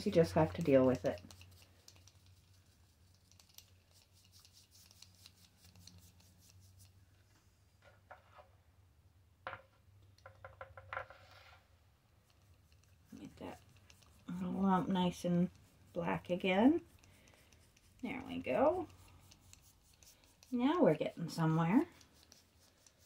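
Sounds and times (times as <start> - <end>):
paintbrush strokes and taps: 0.0 - 8.5, 9.5 - 23.0
low room hum: 0.0 - 23.0.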